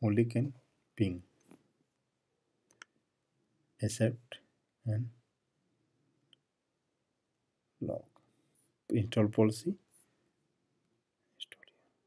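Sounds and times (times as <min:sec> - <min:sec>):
soft clicks or mouth noise: 0:02.7 - 0:03.0.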